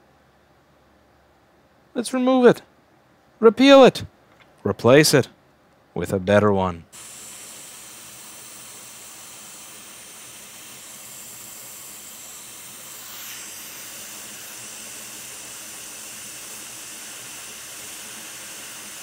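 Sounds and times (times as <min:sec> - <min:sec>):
hot air station hissing: 0:06.9 - 0:19.0.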